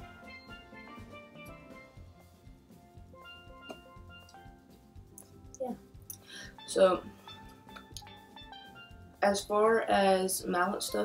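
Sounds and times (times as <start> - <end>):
steel drum band music: 0.0 - 11.0.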